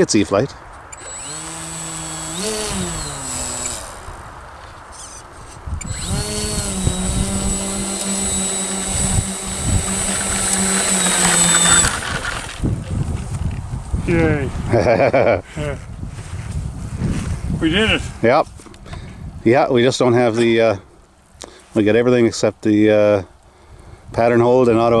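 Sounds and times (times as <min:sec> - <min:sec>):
model plane electric motor: 0:00.9 - 0:04.3, 0:04.9 - 0:12.7
high whine: 0:00.9 - 0:12.8.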